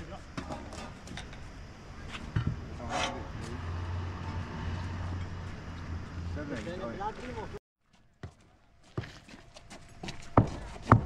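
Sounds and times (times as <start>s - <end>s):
vehicle engine hum: 1.6s - 7.6s.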